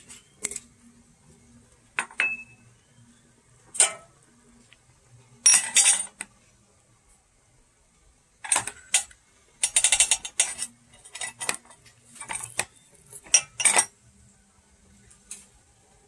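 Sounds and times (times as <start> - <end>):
spoon clinking on metal kettle: 12.2 - 13.9.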